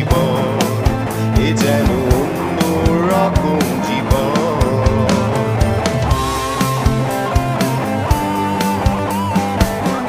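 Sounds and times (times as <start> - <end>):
bass: 0.0 - 10.0
drums: 0.0 - 10.0
electric guitar lead with bending notes: 0.0 - 10.0.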